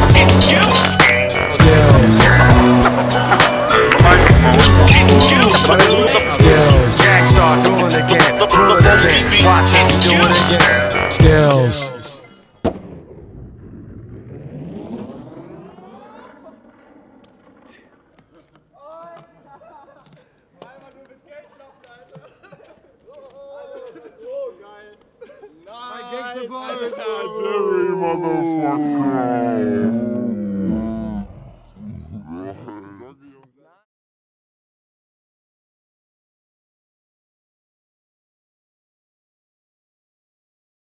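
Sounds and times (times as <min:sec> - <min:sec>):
young men laughing loudly: 0:01.7 - 0:07.8, 0:18.3 - 0:20.3, 0:21.5 - 0:25.7, 0:26.5 - 0:29.8, 0:32.2 - 0:33.3
skateboard wheels rolling on asphalt: 0:14.0 - 0:19.5.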